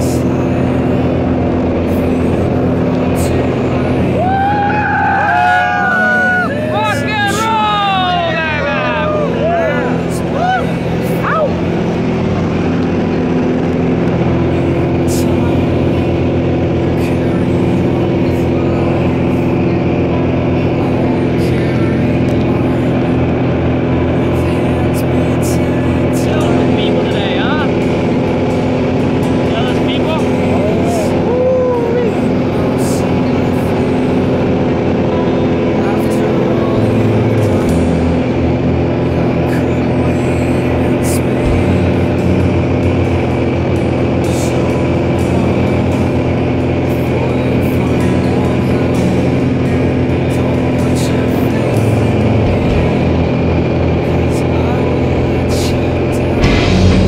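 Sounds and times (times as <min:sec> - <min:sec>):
propeller plane engine droning: 0:00.0 - 0:57.0
voices: 0:00.0 - 0:57.0.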